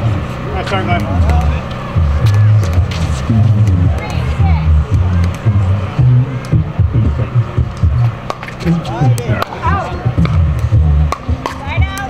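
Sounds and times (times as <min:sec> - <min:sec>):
indistinct voices: 0:00.0 - 0:12.0
low rumble: 0:00.0 - 0:12.0.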